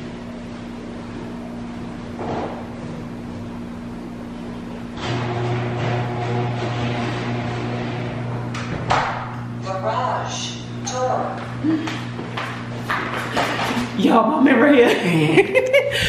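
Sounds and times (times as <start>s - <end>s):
motor humming: 0.0s - 14.2s.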